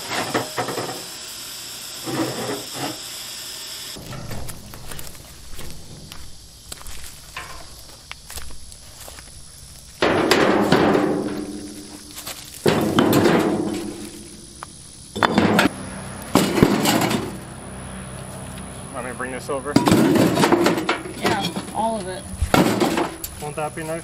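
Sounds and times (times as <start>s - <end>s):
scraping and handling: 4.0s - 9.4s
concrete chunks thudding into wheelbarrow: 10.0s - 14.4s, 15.2s - 15.7s, 16.4s - 17.4s, 19.8s - 21.9s, 22.5s - 23.4s.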